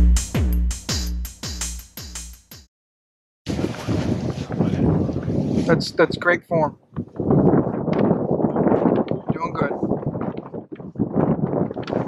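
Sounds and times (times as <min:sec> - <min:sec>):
wind buffeting microphone: 0:03.5 - 0:12.0.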